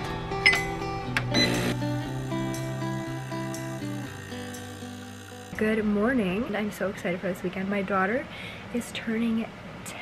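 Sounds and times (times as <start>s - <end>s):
background music: 0.0s - 6.4s.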